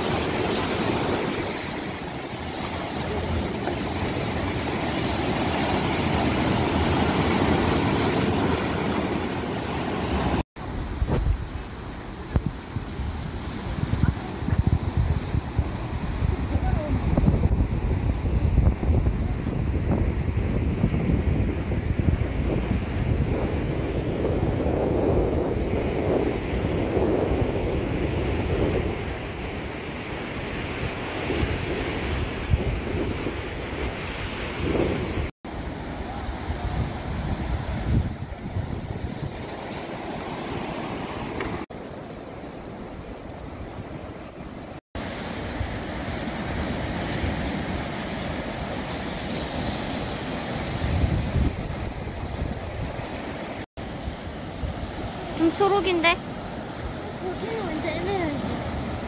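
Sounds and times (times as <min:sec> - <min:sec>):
waves breaking on rocks: 0:00.0 - 0:17.2, 0:33.6 - 0:59.0
wind buffeting microphone: 0:00.0 - 0:41.6, 0:42.4 - 0:59.0.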